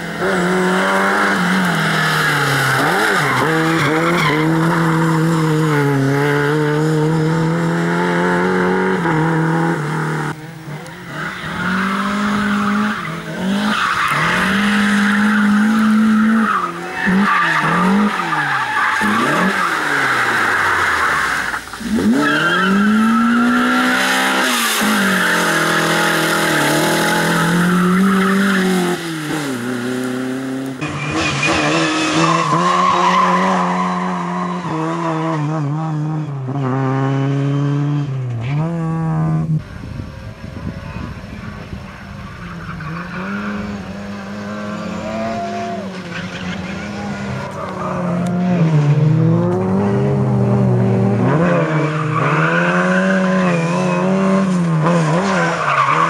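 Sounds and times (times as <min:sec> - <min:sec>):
tyres skidding: 0:00.0 - 0:37.0, 0:38.0 - 0:56.0
rally car engines revving: 0:00.0 - 0:56.0.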